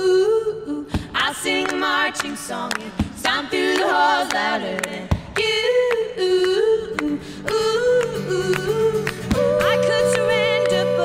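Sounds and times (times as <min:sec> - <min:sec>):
acoustic guitar: 0:00.0 - 0:11.0
women singing harmony: 0:00.0 - 0:11.0
handclaps: 0:01.1 - 0:11.0.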